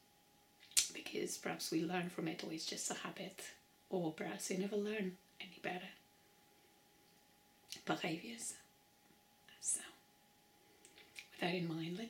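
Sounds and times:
woman speaking softly: 0.9s - 6.0s, 7.7s - 8.7s, 9.5s - 10.0s, 11.2s - 12.0s.

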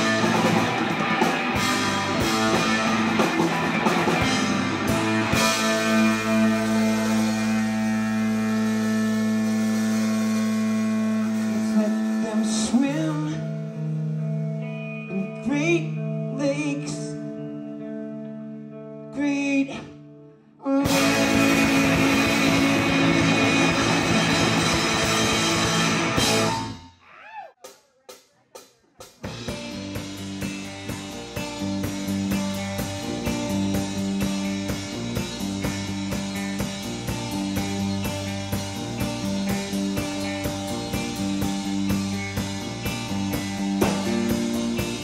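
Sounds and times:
electric guitars sustained chord: 0.0s - 15.4s, 20.8s - 26.8s, 29.6s - 45.0s
live rock band playing: 0.0s - 19.9s, 20.7s - 45.0s
drum hits: 43.3s - 45.0s.

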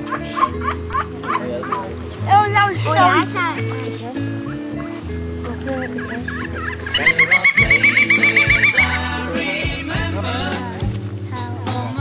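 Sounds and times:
steady background music: 0.0s - 12.0s
bird call fast run of notes: 5.8s - 9.2s.

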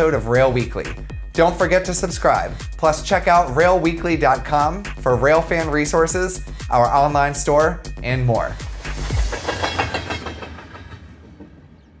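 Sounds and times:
freight train wheels on rails: 8.8s - 12.0s.

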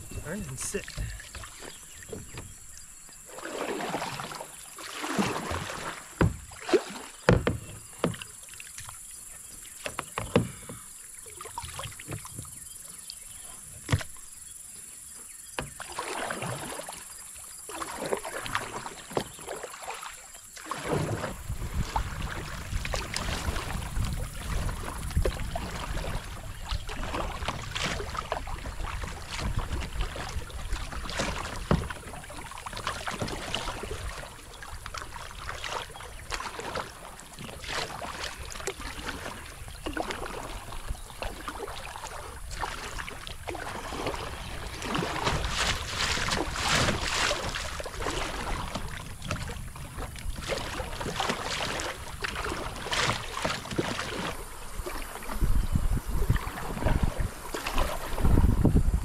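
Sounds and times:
paddle strokes splashing in water: 0.0s - 59.0s.

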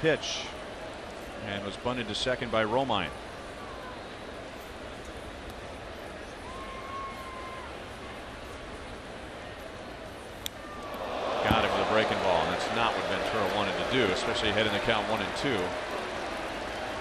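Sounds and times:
crowd cheering and shouting: 10.7s - 17.0s
crowd murmur: 10.8s - 17.0s.

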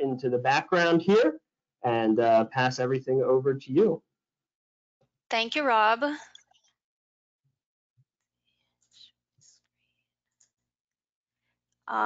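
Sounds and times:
person speaking: 0.0s - 1.3s, 1.9s - 4.0s.

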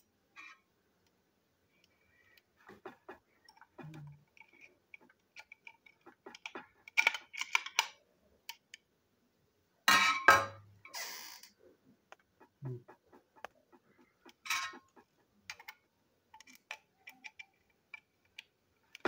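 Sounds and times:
plastic toy parts clicking: 3.5s - 8.8s, 15.5s - 19.0s.

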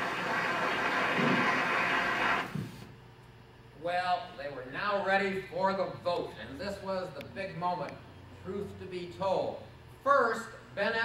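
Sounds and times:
crowd noise played over speakers: 0.0s - 2.8s.

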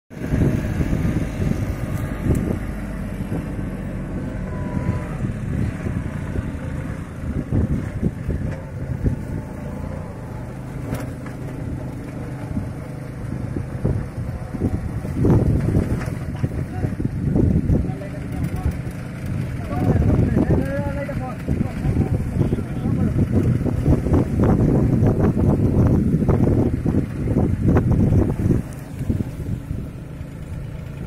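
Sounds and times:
tractor diesel engine under load: 0.1s - 31.0s.

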